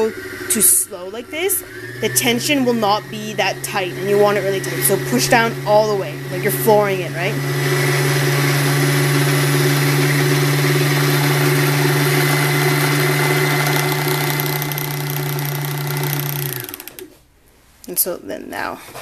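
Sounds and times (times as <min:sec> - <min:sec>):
sewing machine motor running: 0:07.5 - 0:17.1.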